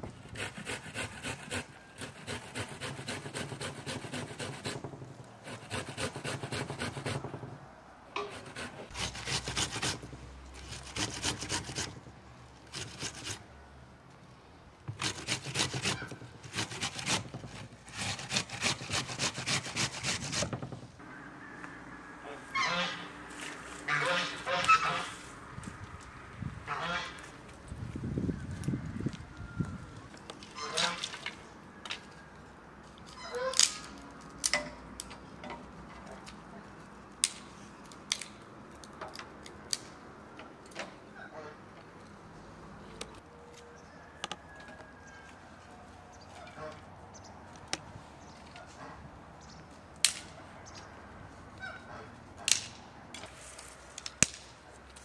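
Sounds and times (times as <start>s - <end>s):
geese honking: 22.2s - 23.2s, 23.9s - 25.2s
dry stick snapping: 37.2s - 39.9s.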